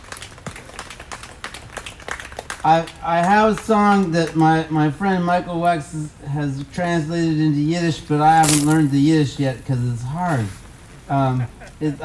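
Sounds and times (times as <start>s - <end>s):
light applause: 0.0s - 10.5s.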